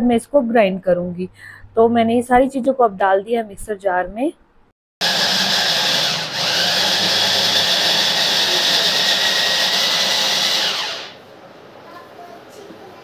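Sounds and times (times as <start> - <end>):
electric chopper whining: 5.0 - 11.2.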